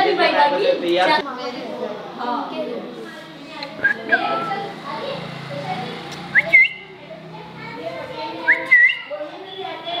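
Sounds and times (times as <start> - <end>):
low background chatter: 0.0 - 10.0
parakeet rising whistles: 6.3 - 6.9.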